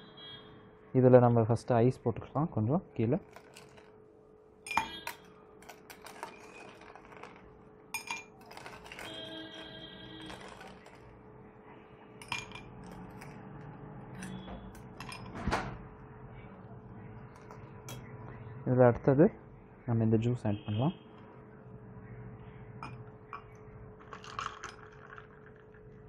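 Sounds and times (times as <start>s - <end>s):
ice and spoon clinking: 3.2s - 3.9s, 4.7s - 11.2s, 12.2s - 13.5s, 14.1s - 15.3s, 22.8s - 25.8s.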